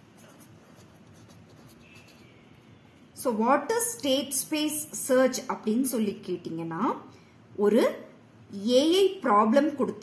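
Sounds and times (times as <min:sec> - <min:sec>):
marker scratching on paper: 0:00.0 - 0:02.4.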